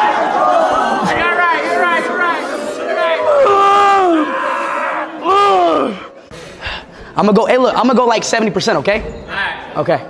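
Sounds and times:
people chattering and laughing: 0.0 - 7.3
man's long held cry: 0.3 - 6.1.

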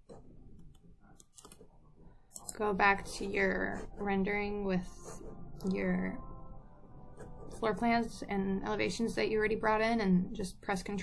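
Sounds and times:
computer mouse clicks: 0.0 - 1.6, 2.3 - 2.6.

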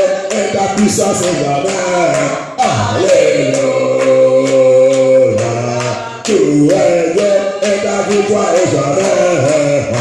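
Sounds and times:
voices singing worship song: 0.0 - 10.0.

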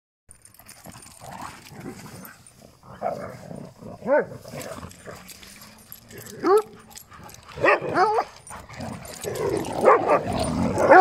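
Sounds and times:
dogs growling and grunting: 0.5 - 11.0.

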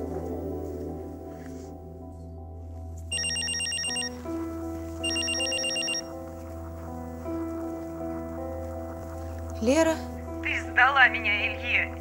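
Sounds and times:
soft background music: 0.0 - 12.0
telephone ringing: 3.1 - 4.3, 5.0 - 6.2.

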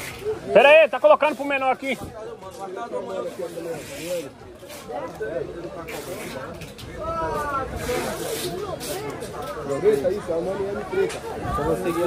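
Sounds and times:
background voices talking: 0.0 - 12.0.

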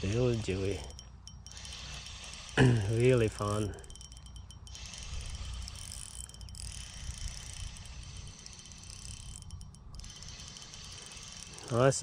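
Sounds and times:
fishing reel whirring and ticking: 0.0 - 12.0.

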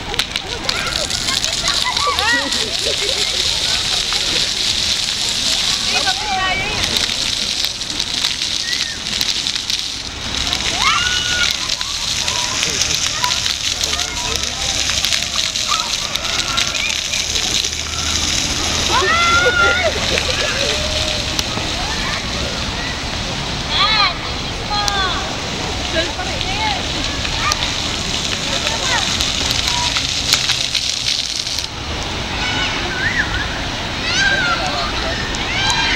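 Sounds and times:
fountain water splashing: 0.0 - 35.9
children calling out: 0.1 - 4.5, 10.5 - 25.4, 26.5 - 30.2, 32.2 - 35.9.

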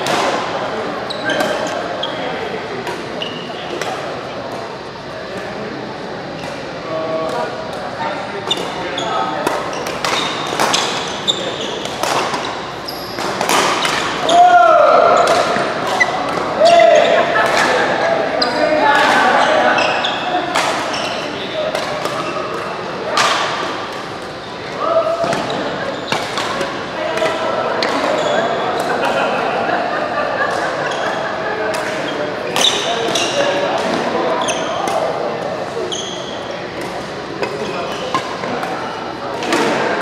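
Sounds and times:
players calling: 0.0 - 40.0.

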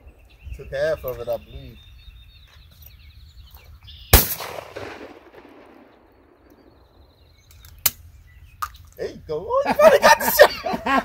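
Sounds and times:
shotgun blast: 4.1 - 6.8.

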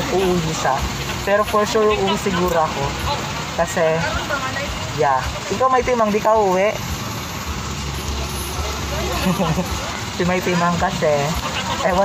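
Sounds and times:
road noise: 0.0 - 12.0
vehicle engine rumble: 0.0 - 12.0.

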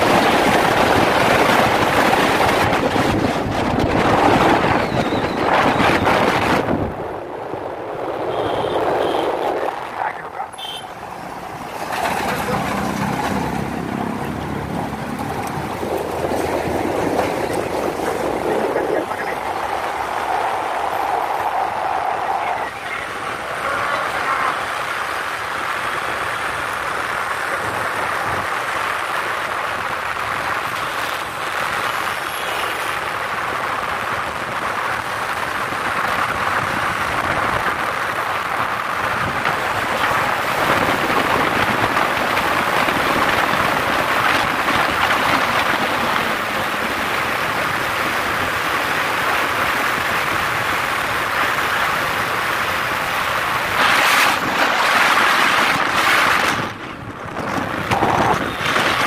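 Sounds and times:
wind and road noise: 0.0 - 59.0.

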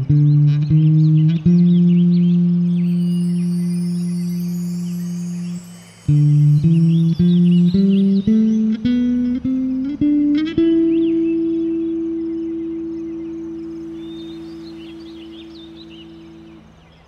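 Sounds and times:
bass guitar plucked notes: 0.0 - 4.2, 5.1 - 17.0.

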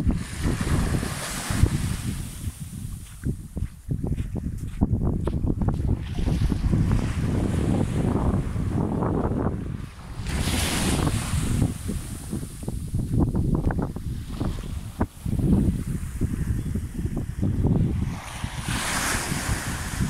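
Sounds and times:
small waves washing ashore: 0.0 - 3.3, 9.6 - 20.0
wind buffeting microphone: 0.0 - 20.0.

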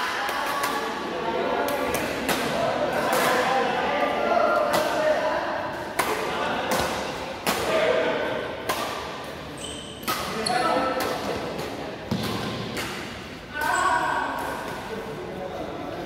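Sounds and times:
rackets hitting shuttlecock: 5.8 - 8.0, 8.6 - 14.8.

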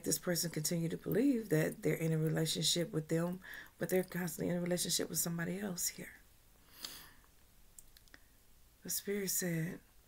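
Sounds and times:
woman speaking: 0.0 - 6.2, 8.8 - 9.9.

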